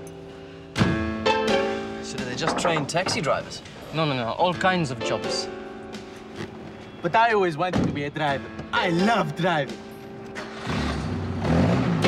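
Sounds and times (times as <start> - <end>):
music: 0.0 - 12.0
car engine pulling away: 10.3 - 12.0.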